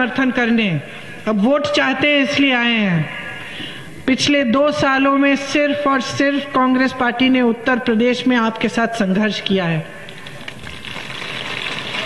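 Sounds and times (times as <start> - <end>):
crowd applauding and cheering: 10.6 - 12.0.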